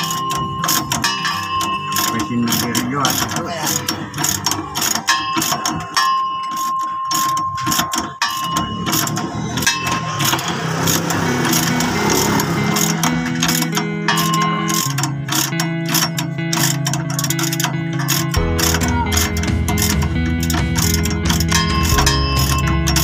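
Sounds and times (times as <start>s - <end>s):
background music: 0.0s - 23.0s
ratchet wrench clicking: 0.0s - 23.0s.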